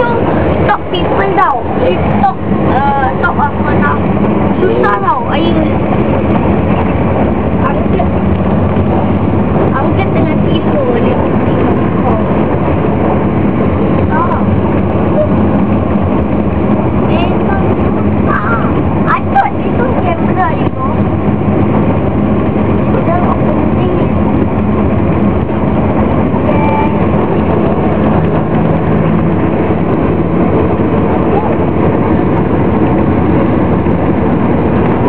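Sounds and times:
coach engine and road drone: 0.0 - 35.0
passengers talking: 0.0 - 35.0.

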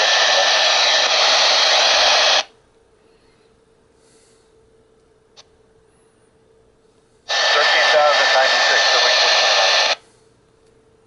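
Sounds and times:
radio static hiss: 0.0 - 2.5, 7.3 - 10.0
faint radio voice: 7.3 - 10.0.

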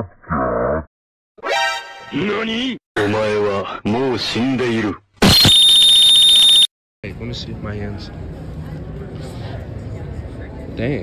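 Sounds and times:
electronic buzzer alarm tone: 5.4 - 6.7.

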